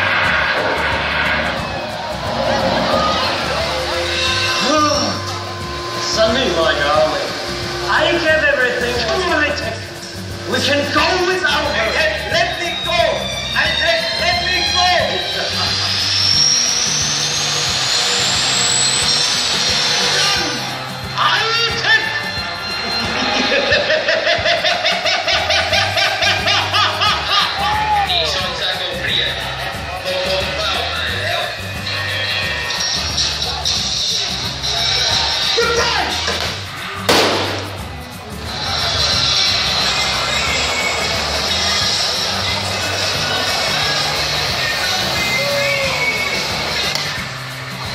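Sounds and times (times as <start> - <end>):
explosion bang: 0.0 - 4.6, 37.1 - 37.9
fast driving beat: 0.0 - 16.8
hissing sweep rising in pitch: 0.0 - 24.6
steady bass line: 0.0 - 24.7
action soundtrack music over loudspeakers: 0.0 - 47.9.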